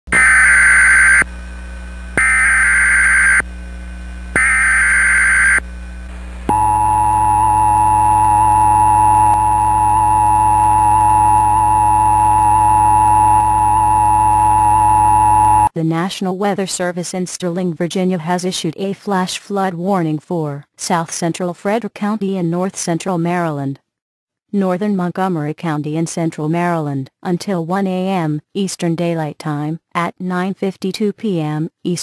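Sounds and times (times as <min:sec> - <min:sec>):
digital header data bursts: 0:04.4 - 0:05.6, 0:06.5 - 0:15.7
two-tone attention signal: 0:06.5 - 0:15.7.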